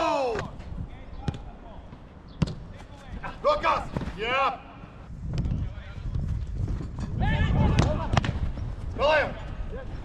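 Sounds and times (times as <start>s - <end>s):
football kicked: 1.2s - 2.9s, 7.6s - 8.6s.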